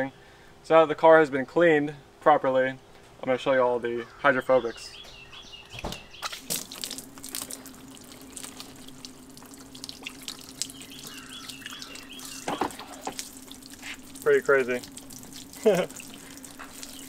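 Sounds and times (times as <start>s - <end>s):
water pouring from hose: 6.2s - 17.0s
water splashing off car: 6.3s - 17.0s.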